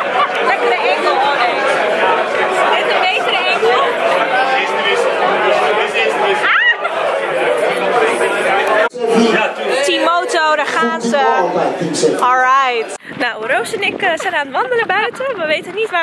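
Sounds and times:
crowd chatter in large room: 0:00.0 - 0:16.0.

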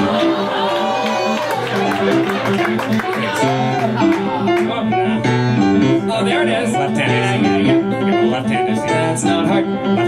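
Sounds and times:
grand piano playing: 0:00.0 - 0:10.0.

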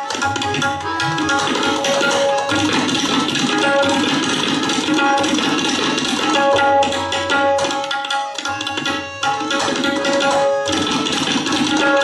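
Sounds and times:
harmonium melody: 0:00.0 - 0:12.0
tabla drumming: 0:00.0 - 0:12.0.

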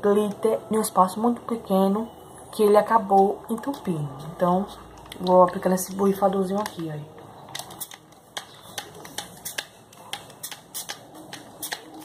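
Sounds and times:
spray bottle spritzing: 0:08.7 - 0:12.0.

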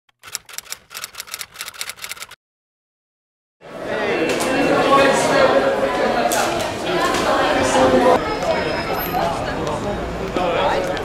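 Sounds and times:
typewriter keys clacking: 0:00.1 - 0:02.4.

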